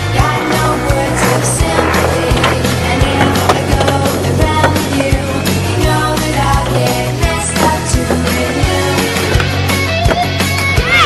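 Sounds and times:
loud music track: 0.0 - 11.0
skateboard wheels rolling on concrete: 0.0 - 11.0.

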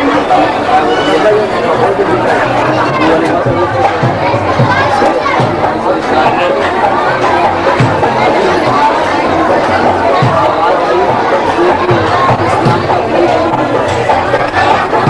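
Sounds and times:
men talking over one another: 0.0 - 15.0.

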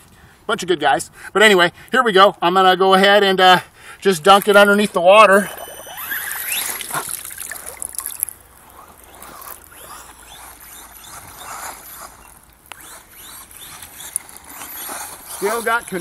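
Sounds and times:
toy car motor whining: 5.4 - 7.7, 8.6 - 16.0
water splashing and dripping: 5.5 - 8.6.

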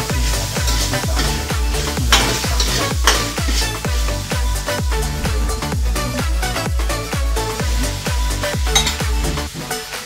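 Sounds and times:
electronic dance music: 0.0 - 10.0
food sizzling: 0.0 - 10.0
metal spatula scraping wok: 0.5 - 4.0.

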